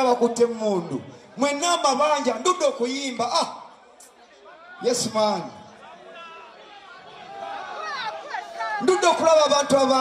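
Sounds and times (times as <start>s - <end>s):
voices talking in a hall: 0.0s - 10.0s.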